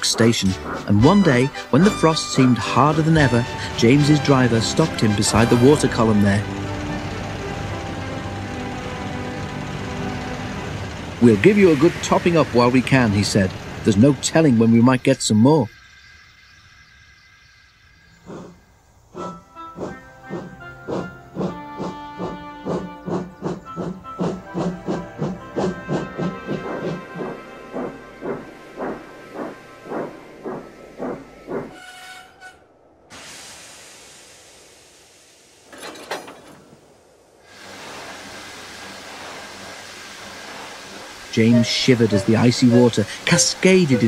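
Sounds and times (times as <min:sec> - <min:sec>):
steam locomotive chuffing: 0:00.0 - 0:14.5, 0:19.2 - 0:32.0, 0:37.5 - 0:44.0
steam hissing: 0:33.1 - 0:35.8, 0:36.7 - 0:44.0.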